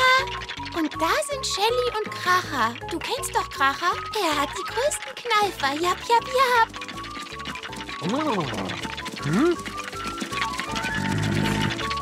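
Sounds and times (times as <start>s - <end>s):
cartoon background music: 0.0s - 12.0s.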